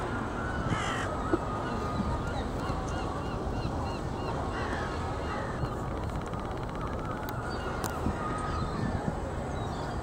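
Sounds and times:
low rush of outdoor noise: 0:00.0 - 0:10.0.

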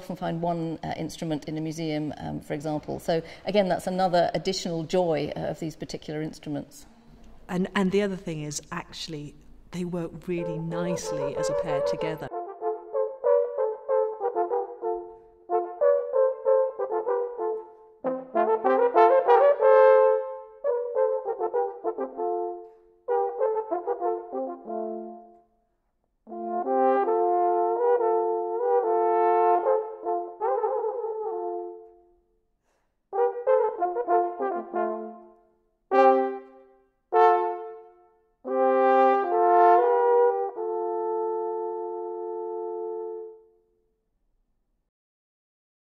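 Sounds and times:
natural horns playing a duet: 0:10.2 - 0:25.4, 0:26.3 - 0:32.1, 0:33.1 - 0:43.6.

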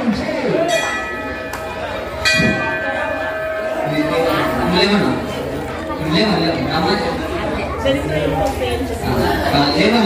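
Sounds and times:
hand bell ringing: 0:00.7 - 0:06.4.

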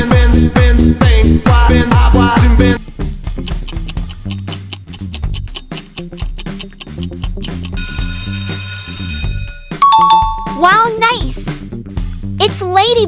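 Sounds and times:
clock ticking: 0:03.4 - 0:07.8
alarm clock ringing: 0:03.5 - 0:09.5.

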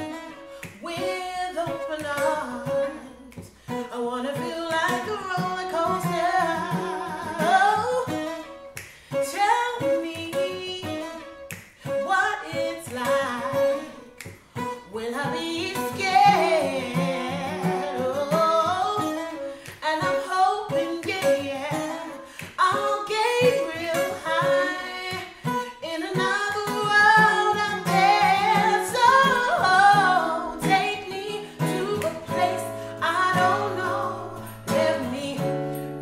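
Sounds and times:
plucked acoustic guitar: 0:00.0 - 0:36.0
woman singing slow song: 0:00.0 - 0:36.0.

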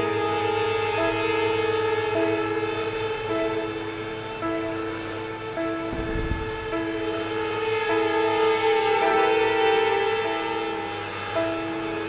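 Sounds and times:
string quartet music: 0:00.0 - 0:12.0.

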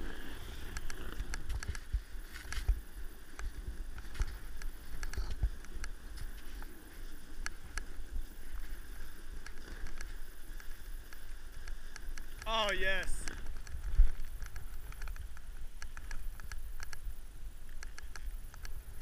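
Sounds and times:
snowboard sliding on snow: 0:00.0 - 0:14.9.

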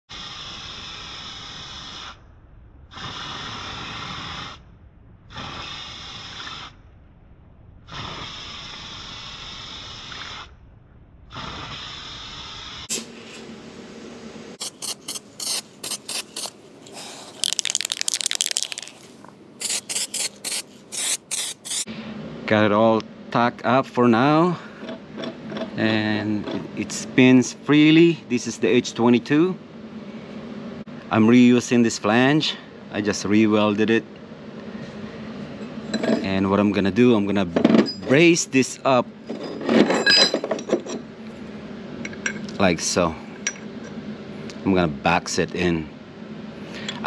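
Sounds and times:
spray paint can hissing: 0:00.1 - 0:02.2, 0:03.0 - 0:04.6, 0:05.4 - 0:06.7, 0:07.9 - 0:10.5, 0:11.5 - 0:13.0, 0:14.6 - 0:21.9.

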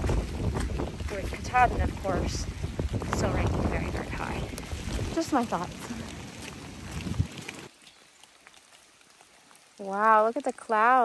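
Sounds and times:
wind buffeting microphone: 0:00.0 - 0:07.7
rain hiss: 0:00.0 - 0:11.0
water drips: 0:00.0 - 0:11.0.

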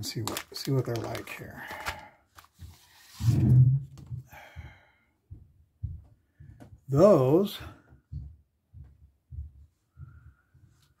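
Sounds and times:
plastic bag rustling: 0:00.0 - 0:03.4.

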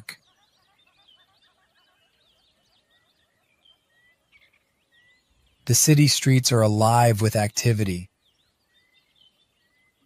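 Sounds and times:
faint high bird chirps: 0:00.0 - 0:10.0.

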